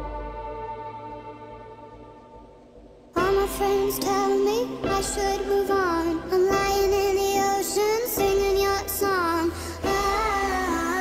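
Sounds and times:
steady low bass: 0:00.0 - 0:03.6.

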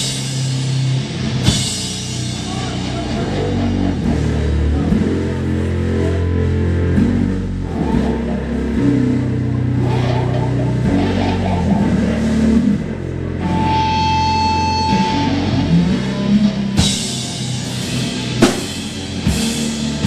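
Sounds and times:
rock band playing low held notes: 0:00.0 - 0:20.0.

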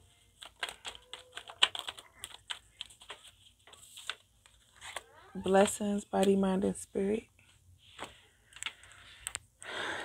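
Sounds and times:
cards being shuffled: 0:00.3 - 0:06.4.

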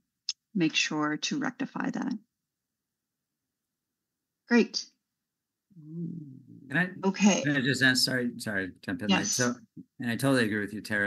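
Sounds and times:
woman speaking: 0:00.3 - 0:02.2, 0:04.5 - 0:05.0, 0:07.0 - 0:07.5, 0:09.1 - 0:09.5
low murmured vocal sound: 0:05.7 - 0:07.0.

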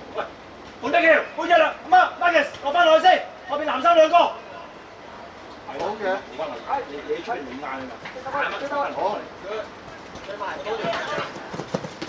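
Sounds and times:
spectators' indistinct voices: 0:00.0 - 0:11.8.

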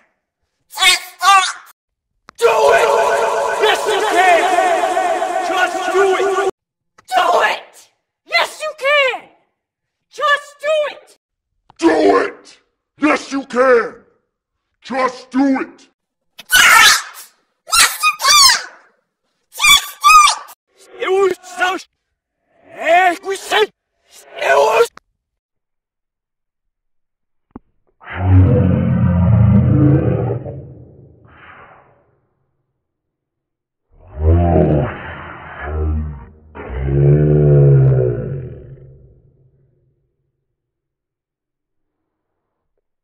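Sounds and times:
high-pitched sped-up shouts: 0:02.4 - 0:06.5
slowed deep drawn-out voice: 0:28.0 - 0:31.4, 0:34.0 - 0:39.4.

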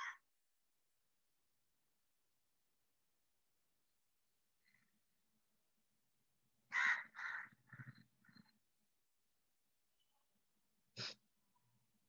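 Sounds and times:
bird harsh calls: 0:06.7 - 0:08.6.

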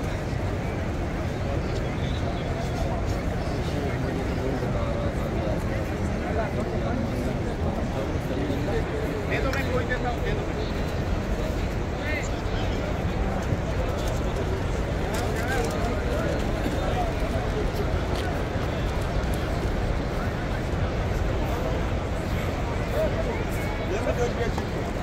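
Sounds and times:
crowd babble: 0:00.0 - 0:25.0.

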